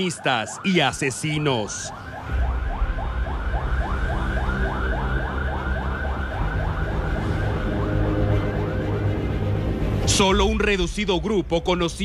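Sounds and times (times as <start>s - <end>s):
police siren yelping: 0.0s - 10.0s
low steady drone: 2.1s - 10.7s.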